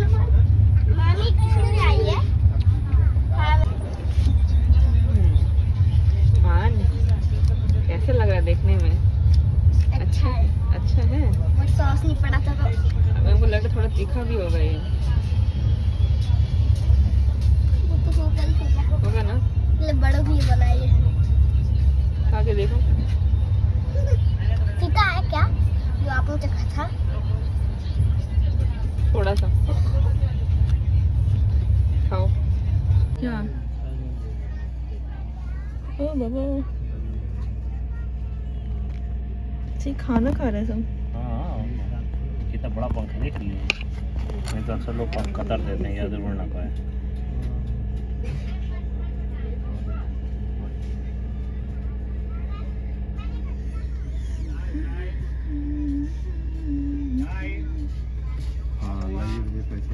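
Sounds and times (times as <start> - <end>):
train rumble inside coach: 0.0 - 59.9
voices talking: 0.0 - 59.9.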